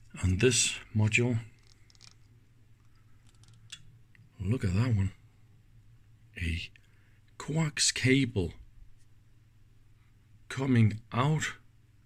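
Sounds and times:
circuit board clicks and rustles: 1.6 - 3.8.

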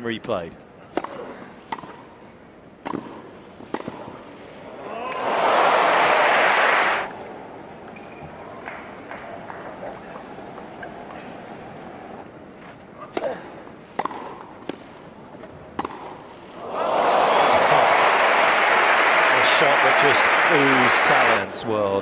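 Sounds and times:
tennis ball struck by rackets: 2.8 - 4.2, 13.1 - 14.8, 15.7 - 16.2
crowd cheering and applauding: 5.0 - 7.1, 16.6 - 21.5.

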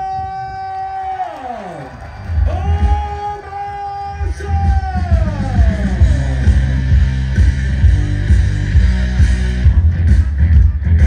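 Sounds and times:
loud low beats: 2.2 - 11.0
music: 4.0 - 11.0.

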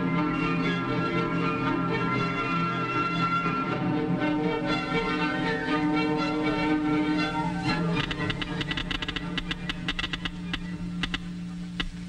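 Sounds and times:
orchestral film music: 0.0 - 12.0
low hum: 3.6 - 12.0
geiger counter clicking: 8.0 - 12.0.

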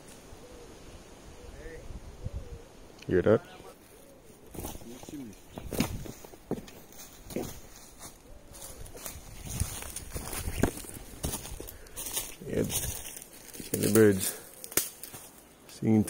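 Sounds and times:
footsteps crunching through dry leaves: 3.8 - 15.8.

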